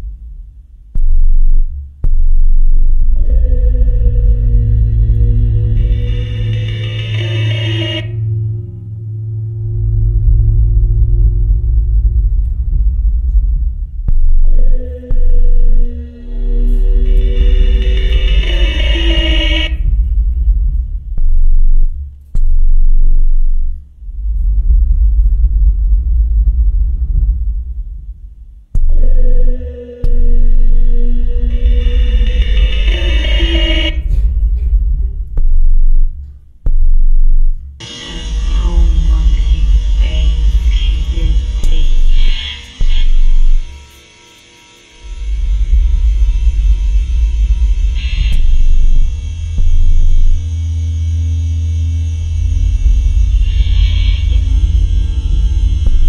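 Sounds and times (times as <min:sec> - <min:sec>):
loud deep rumble: 0:00.0 - 0:43.9, 0:45.0 - 0:56.0
drone music: 0:00.0 - 0:56.0.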